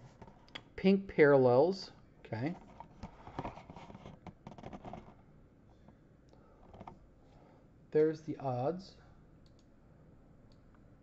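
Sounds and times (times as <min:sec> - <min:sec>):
small clicks: 0:09.4 - 0:09.7.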